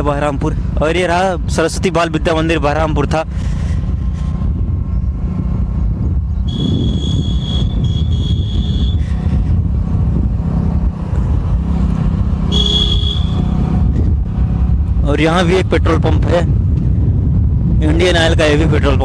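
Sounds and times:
motorcycle engine rumble: 0.0s - 19.0s
wind while riding: 0.0s - 19.0s
high-pitched vehicle horn: 6.5s - 9.0s, 12.5s - 13.5s.

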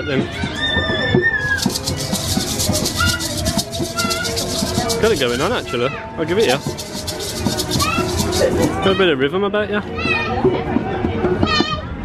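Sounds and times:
maraca rattling: 1.4s - 9.1s
background music: 1.4s - 9.3s.

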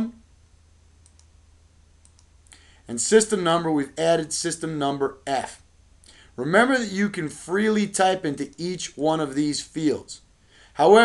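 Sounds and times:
low background hiss: 0.0s - 11.0s
faint computer mouse clicks: 1.0s - 1.3s, 2.0s - 2.6s.

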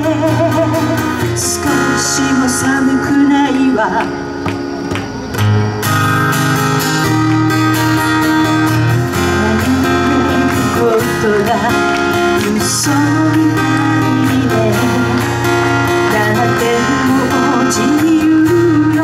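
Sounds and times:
woman singing into microphone: 0.0s - 4.6s, 9.1s - 19.0s
acoustic guitar strumming: 0.0s - 19.0s.

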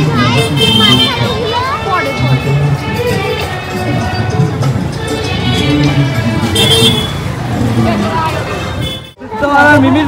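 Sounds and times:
many voices talking: 0.0s - 10.0s
traffic: 0.0s - 10.0s.

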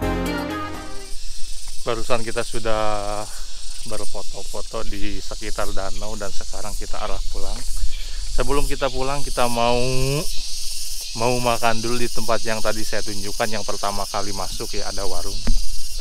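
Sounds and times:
background music: 0.0s - 1.1s
man talking quickly: 1.9s - 7.7s, 8.3s - 10.3s, 11.2s - 15.4s.

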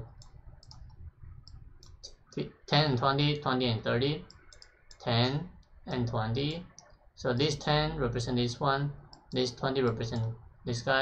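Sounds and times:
computer mouse clicks: 0.0s - 2.4s, 4.2s - 7.0s, 9.0s - 10.4s.

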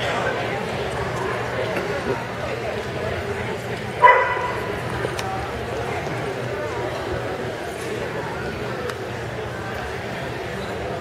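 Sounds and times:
people talking: 0.0s - 11.0s
dog barking: 4.0s - 4.6s.

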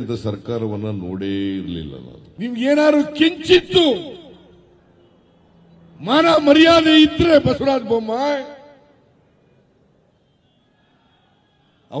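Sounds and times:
man speaking into a microphone: 0.0s - 4.6s, 6.0s - 8.8s.

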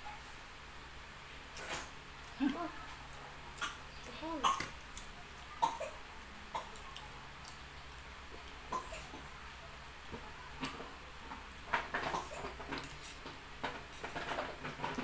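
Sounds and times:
murmured voice: 2.4s - 3.0s.

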